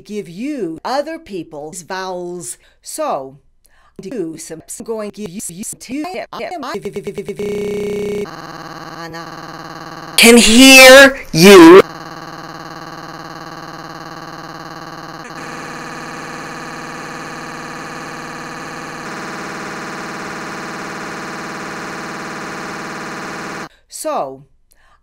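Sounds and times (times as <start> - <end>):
buzzing electronic drone: 7.4 - 10.7, 11.8 - 23.7.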